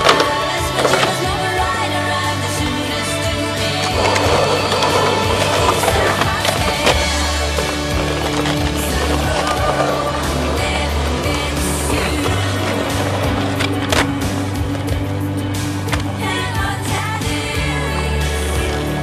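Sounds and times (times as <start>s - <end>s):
background music: 0.0s - 19.0s
skateboard clacks: 0.0s - 19.0s
skateboard wheels rolling on asphalt: 0.0s - 19.0s.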